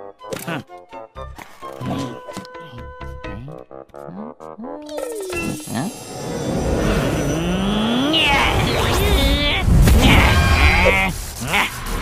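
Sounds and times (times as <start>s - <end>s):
background music: 0.0s - 8.1s
cartoon character vocal cry: 8.0s - 11.8s.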